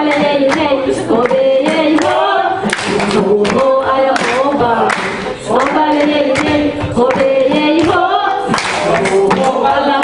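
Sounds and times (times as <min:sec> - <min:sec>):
group singing in unison: 0:00.0 - 0:10.0
hand claps: 0:00.0 - 0:10.0.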